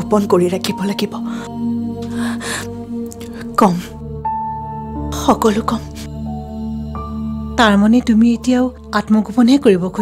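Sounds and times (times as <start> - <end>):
music of sustained tones: 0.0 - 10.0.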